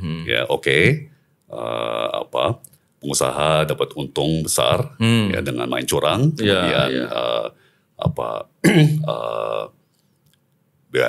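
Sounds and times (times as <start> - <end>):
man's drawn-out hesitation sound: 4.6 - 9.7.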